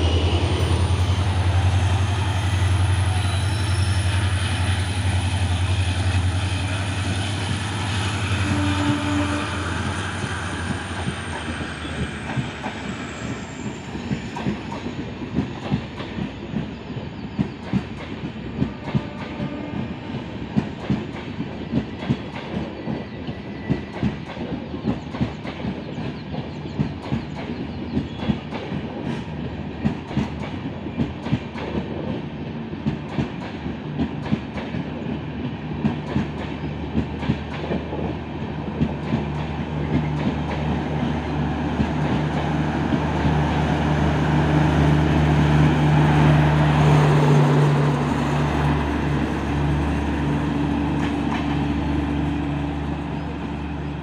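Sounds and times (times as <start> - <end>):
train rumble: 0.0 - 54.0
train wheels clicking over rail joints: 9.7 - 19.5, 20.1 - 52.6.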